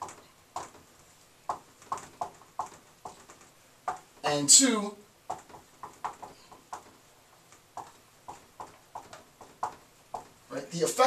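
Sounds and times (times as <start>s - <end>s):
marker squeaking on whiteboard: 0.0s - 4.4s, 5.3s - 10.6s.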